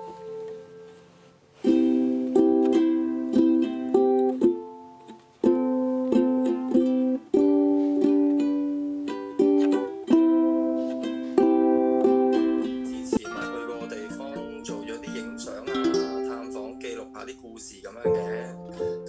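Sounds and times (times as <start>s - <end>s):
ukulele strummed chords: 0.0s - 19.0s.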